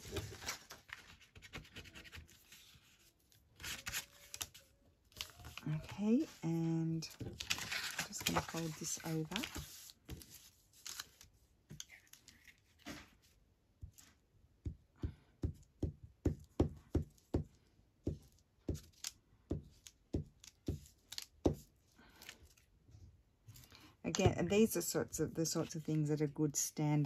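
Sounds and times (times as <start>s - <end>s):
paper being folded: 0.0s - 13.3s.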